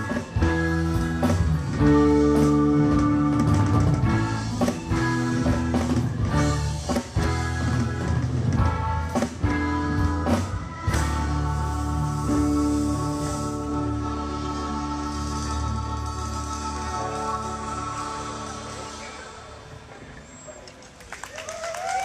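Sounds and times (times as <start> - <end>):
live rock band playing: 0.0 - 19.7.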